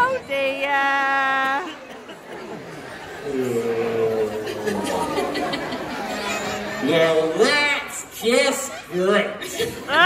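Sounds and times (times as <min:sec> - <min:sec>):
audience chattering and calling out: 0:00.0 - 0:10.0.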